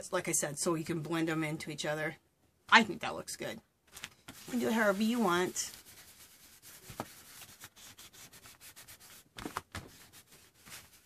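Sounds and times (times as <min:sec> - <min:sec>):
paint pad scrubbing on paper: 0:04.3 - 0:11.0.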